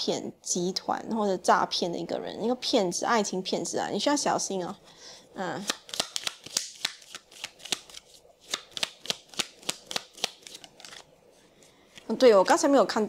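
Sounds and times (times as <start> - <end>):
cards being shuffled: 5.6 - 11.1.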